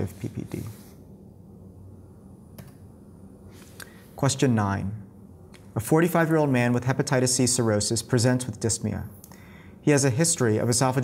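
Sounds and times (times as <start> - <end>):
low steady room hum: 0.0 - 11.0.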